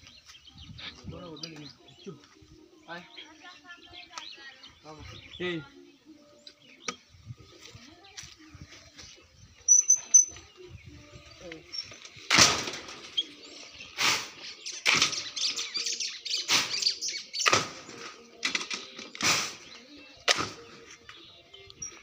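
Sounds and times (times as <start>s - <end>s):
bird chirping: 8.7s - 12.3s, 12.9s - 22.0s.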